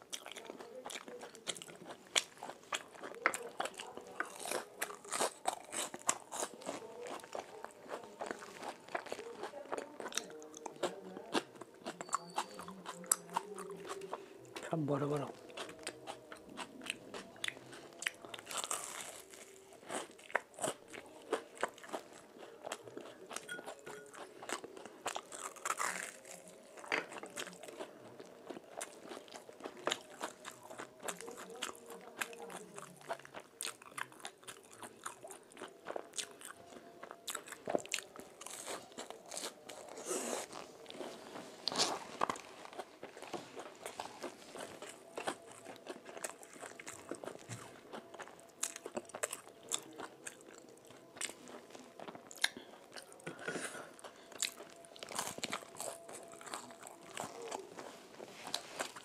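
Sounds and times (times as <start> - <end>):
crunching and chewing crisp food: 0.0 - 59.0.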